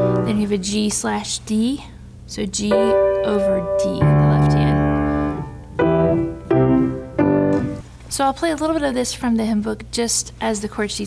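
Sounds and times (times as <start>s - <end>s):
grand piano chord: 0.0s - 0.6s, 2.7s - 7.8s.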